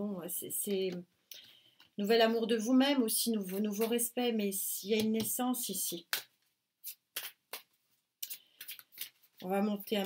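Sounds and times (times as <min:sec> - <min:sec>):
cards rustling while shuffled: 0:06.8 - 0:10.0.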